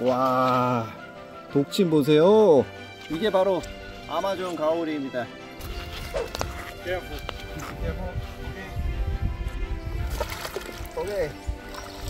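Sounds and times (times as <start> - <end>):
background music: 0.0 - 12.0
foot stirring water: 5.5 - 7.8, 9.7 - 12.0
river water sloshing and splashing: 10.0 - 12.0.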